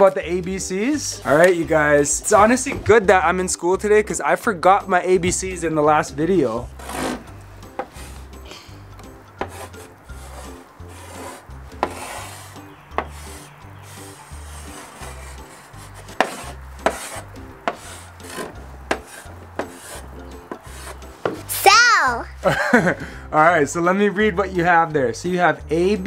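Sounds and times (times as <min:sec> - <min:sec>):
quiet background music with beat: 0:00.0 - 0:26.0
chalk scratching on blackboard: 0:06.8 - 0:08.3, 0:09.4 - 0:21.5
chalk tapping on board: 0:07.8 - 0:08.2, 0:09.4 - 0:21.5.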